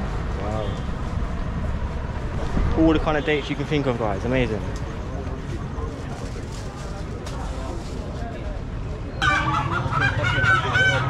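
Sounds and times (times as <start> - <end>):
chickens squawking loudly: 9.2 - 11.0.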